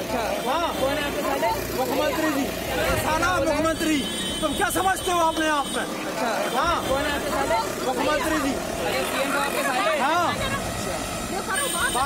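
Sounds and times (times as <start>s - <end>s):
people arguing loudly: 0.0s - 12.0s
road traffic: 0.0s - 12.0s.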